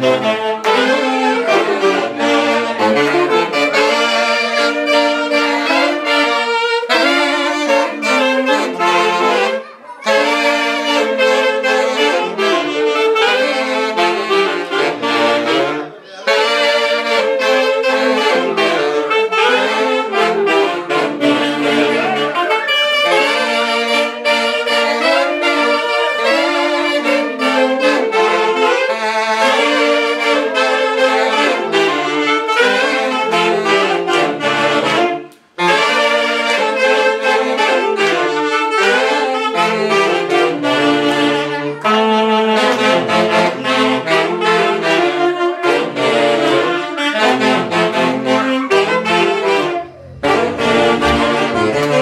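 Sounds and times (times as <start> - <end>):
saxophone band playing: 0.0 - 52.0.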